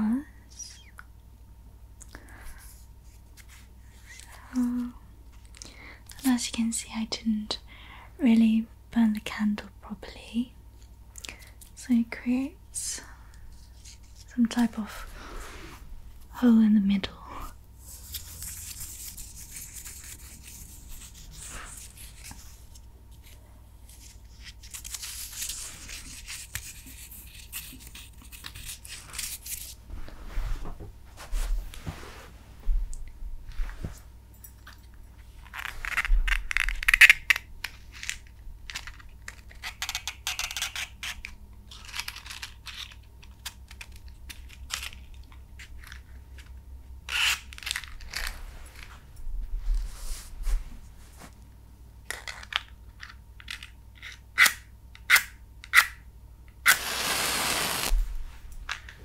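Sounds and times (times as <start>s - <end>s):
matchbox clicks and rattles: 35.5s - 45.2s
match striking: 56.6s - 58.0s.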